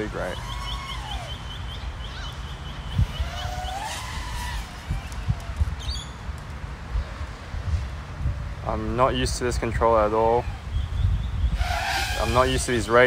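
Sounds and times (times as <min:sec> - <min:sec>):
birds chirping and whistling: 0:00.0 - 0:06.3, 0:09.8 - 0:13.0
wind rumble on microphone: 0:00.0 - 0:13.0.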